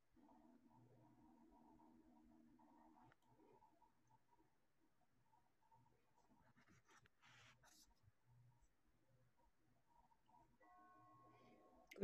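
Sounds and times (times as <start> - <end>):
faint scratching: 5.3 - 8.8.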